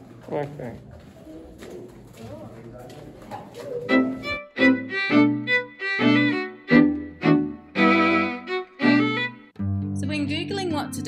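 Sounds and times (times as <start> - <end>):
faint echoing voices: 0.0 - 4.4
violin music: 3.9 - 11.0.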